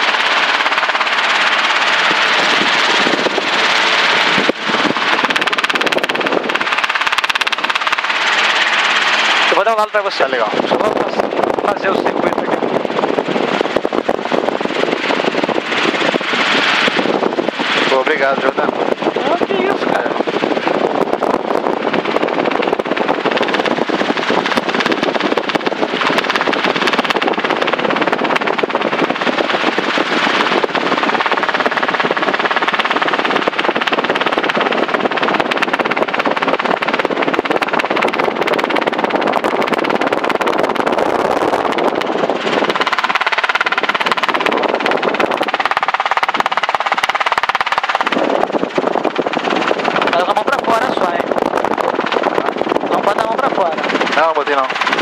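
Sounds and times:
helicopter engine and rotor noise: 0:00.0 - 0:55.0.

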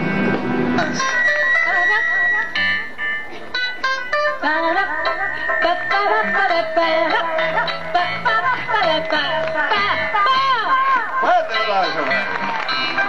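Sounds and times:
women singing together: 0:04.4 - 0:11.0.

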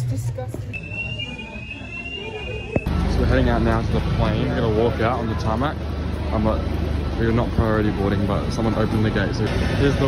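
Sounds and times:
high-pitched electronic alarm tone: 0:00.7 - 0:02.9.

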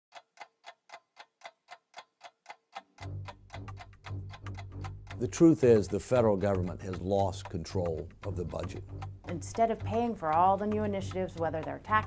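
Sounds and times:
clock-like ticking: 0:00.1 - 0:12.0.

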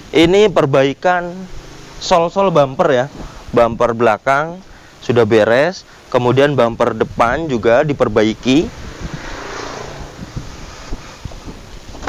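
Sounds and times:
wind noise on microphone: 0:03.0 - 0:04.0, 0:06.3 - 0:12.0.

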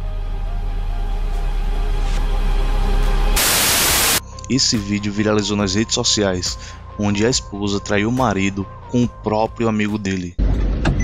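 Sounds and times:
dark music with deep bass: 0:00.0 - 0:11.0
static hiss glitch: 0:03.4 - 0:04.2.

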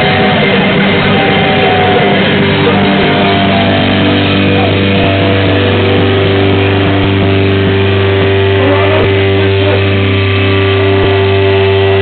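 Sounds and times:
distorted electric guitars and bass: 0:00.0 - 0:12.0.

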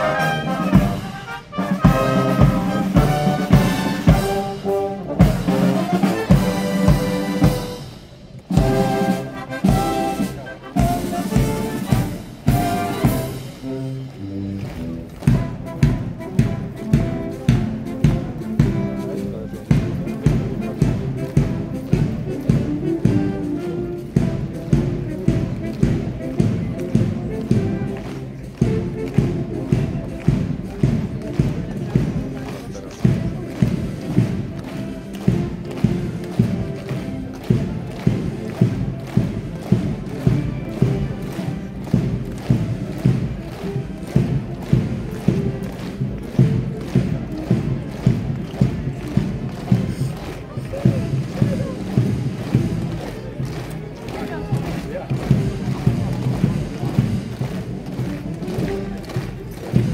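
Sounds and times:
military marching band: 0:00.0 - 0:59.9
bass drum beat: 0:14.7 - 0:59.9.

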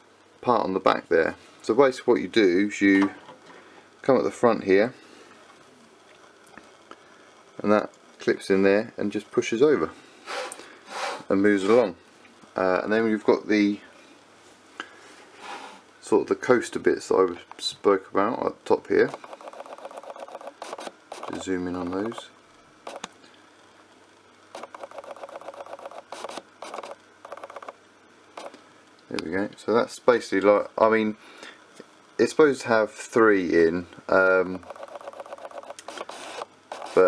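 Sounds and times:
camera lens motor whirring: 0:19.1 - 0:23.1, 0:24.5 - 0:27.8, 0:34.6 - 0:37.0.

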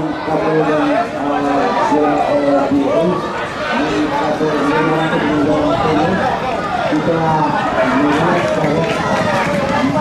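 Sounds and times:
excited commentary speech: 0:00.0 - 0:10.0.

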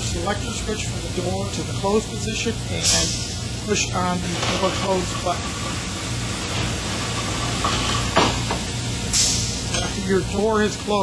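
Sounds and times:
machine humming: 0:00.0 - 0:11.0.

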